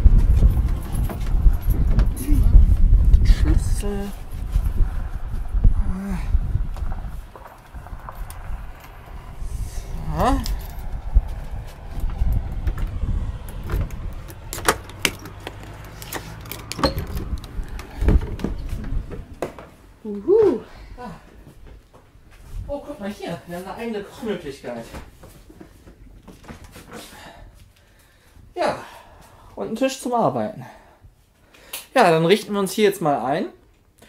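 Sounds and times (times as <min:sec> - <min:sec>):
wind rumble on microphone: 0:00.0 - 0:23.9
door opening: 0:12.1 - 0:19.8
keys jangling in door lock: 0:16.1 - 0:17.9.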